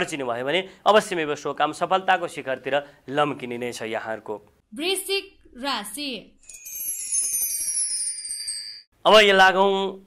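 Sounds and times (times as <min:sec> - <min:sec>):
shimmering bell-like chimes: 0:06.4 - 0:08.9.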